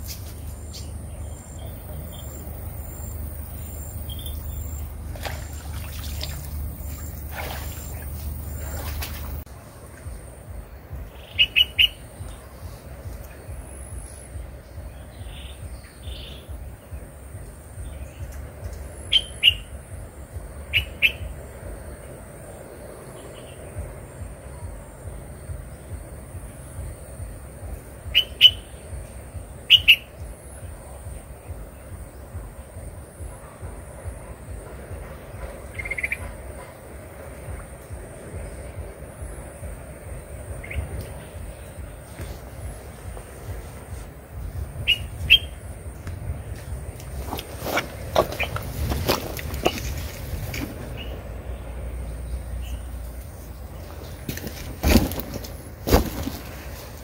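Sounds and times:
steady low rumble: 0.0 - 57.0
bird calling sharp notes: 11.1 - 12.1, 28.1 - 28.8, 29.6 - 30.1, 44.8 - 45.6.

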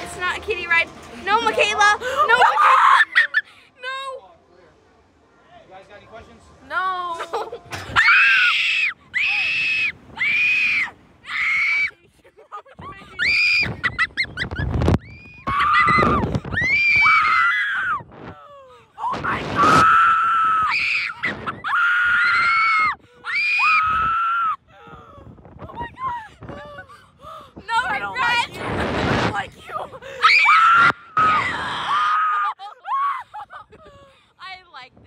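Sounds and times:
girls screaming: 2.4 - 3.4, 7.9 - 12.0, 15.1 - 18.0, 19.0 - 24.6, 30.2 - 33.4
wind gusts on microphone: 12.8 - 31.8.

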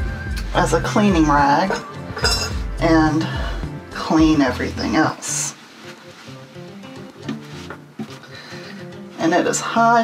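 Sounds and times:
soft plucked-string melody: 0.0 - 4.9, 5.8 - 10.0.

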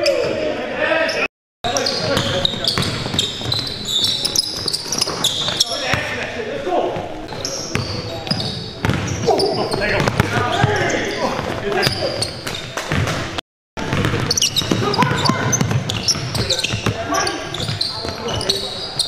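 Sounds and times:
sneakers squeaking on hardwood: 1.0 - 19.0
ball bouncing: 8.8 - 17.0.

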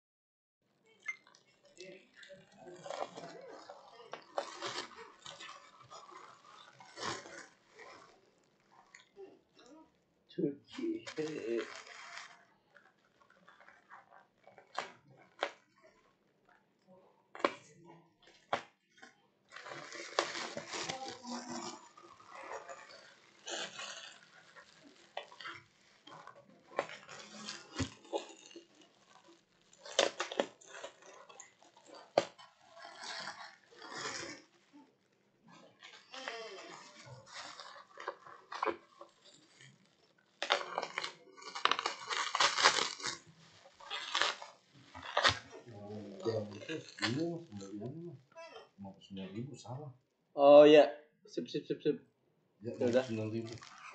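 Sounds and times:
plastic and bubble wrap crinkling: 0.9 - 10.1, 10.7 - 48.8, 52.7 - 53.9.

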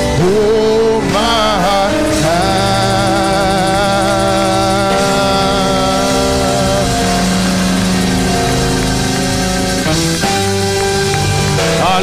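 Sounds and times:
keyboard chords: 0.0 - 12.0
steady drum rhythm: 0.0 - 12.0.

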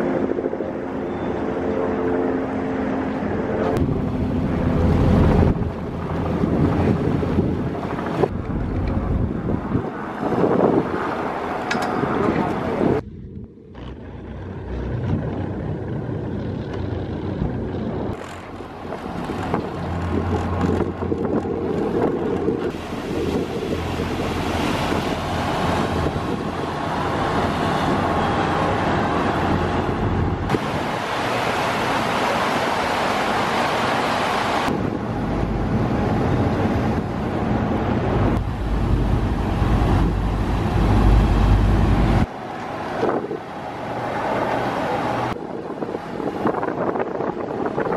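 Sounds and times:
rushing ferry wake: 0.0 - 13.0, 14.3 - 47.9
wind buffeting microphone: 3.8 - 43.9, 45.1 - 47.9.

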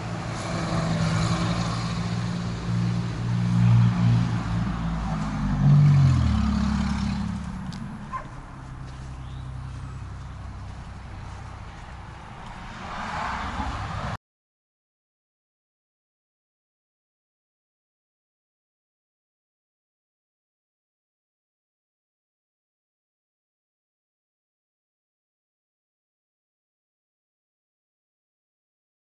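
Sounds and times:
vehicle engine passing by: 0.0 - 14.2.

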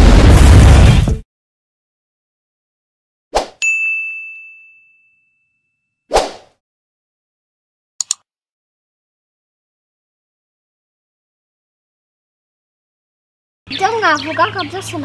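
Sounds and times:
rumbling explosion effect: 0.0 - 1.2
short swish: 3.3 - 3.6, 6.1 - 6.6
bright bell ding: 3.6 - 5.9
quick double click: 8.0 - 8.2.

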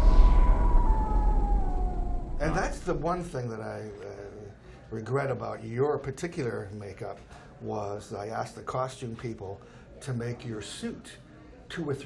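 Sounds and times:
deep rumble: 0.0 - 3.2
eerie high tone sliding down: 0.0 - 3.2.

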